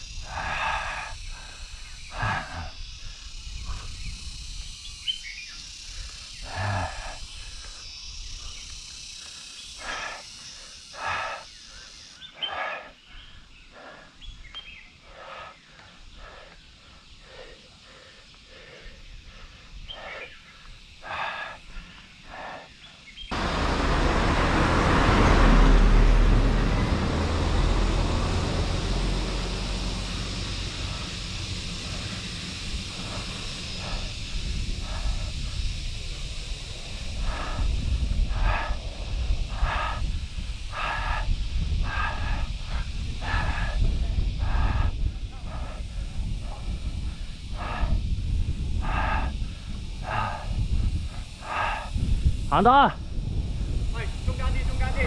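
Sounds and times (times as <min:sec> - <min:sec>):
cyclist heavy breathing: 0:00.0 - 0:25.7, 0:26.5 - 0:54.3
wind rumbling on microphone: 0:00.0 - 0:55.0.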